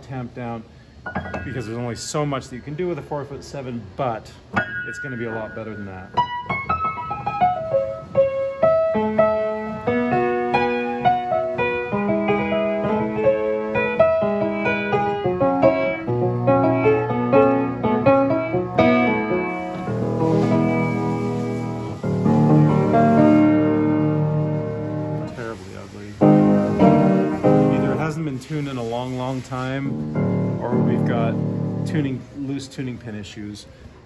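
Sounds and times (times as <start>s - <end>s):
piano playing: 1.0s - 2.7s, 4.5s - 32.7s.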